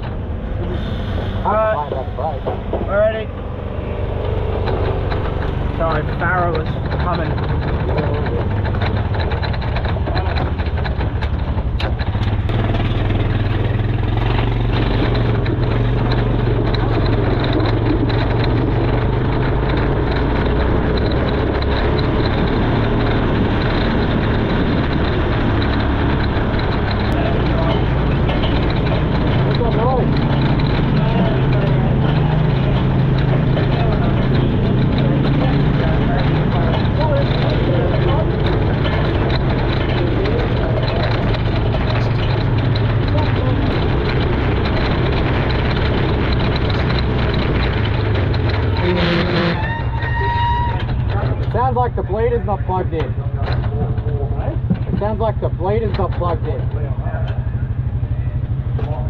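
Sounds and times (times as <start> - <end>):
car engine running at low revs: 0.0 - 59.0.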